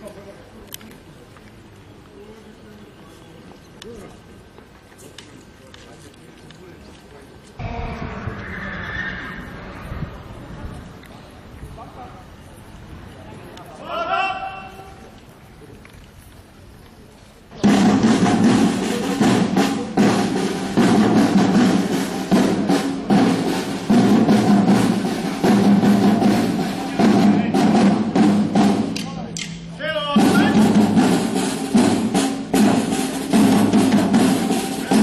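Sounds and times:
marching field drums: 17.6 - 35.0.

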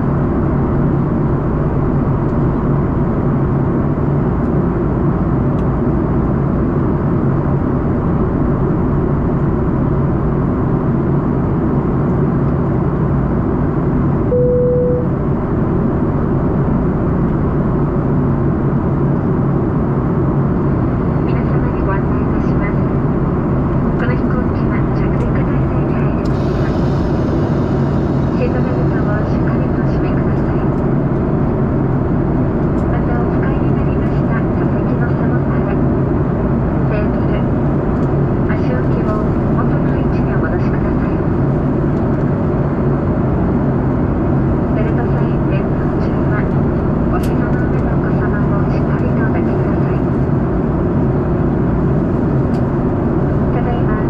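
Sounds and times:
airplane cabin engine noise: 0.0 - 54.0
low hum: 10.9 - 54.0.

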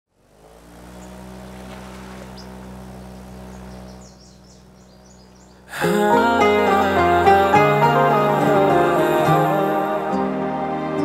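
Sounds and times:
low steady drone: 0.1 - 11.0
high bird-like chirps: 2.3 - 5.7
song music: 5.7 - 11.0
woman singing: 5.8 - 11.0.

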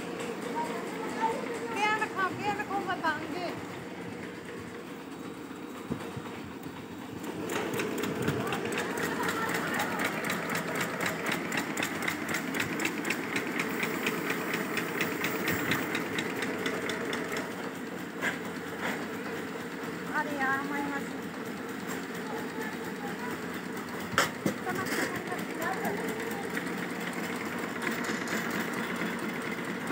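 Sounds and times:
machine mechanical clatter: 5.3 - 19.0, 21.7 - 29.9.

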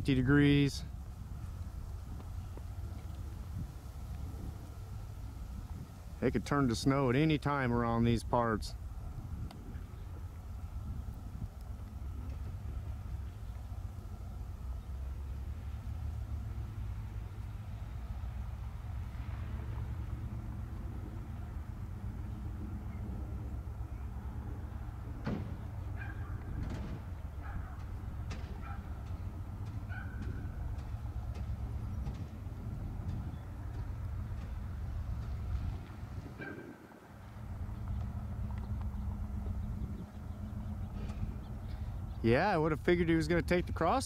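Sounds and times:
diesel locomotive engine rumble: 0.0 - 44.0.

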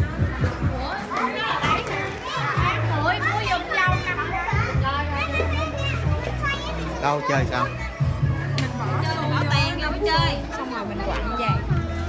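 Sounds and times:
children chattering and calling out: 0.0 - 12.0
background music: 2.2 - 12.0.

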